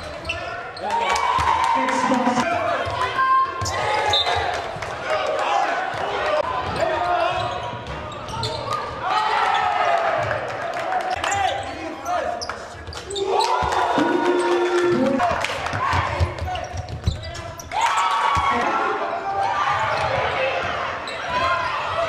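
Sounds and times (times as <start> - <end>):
voices of players and spectators: 0.0 - 22.0.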